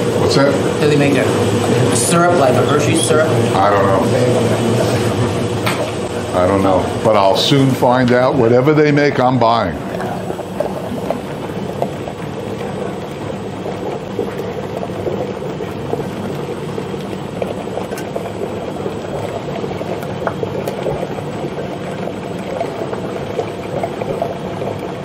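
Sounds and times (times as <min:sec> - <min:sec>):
ice cream freezer churning: 0:00.0 - 0:25.0.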